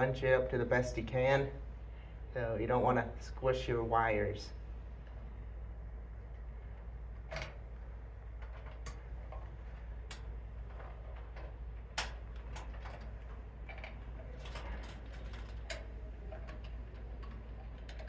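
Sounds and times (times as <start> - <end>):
steady low hum: 0.0 - 18.0
wire nuts clicking on metal: 8.4 - 18.0.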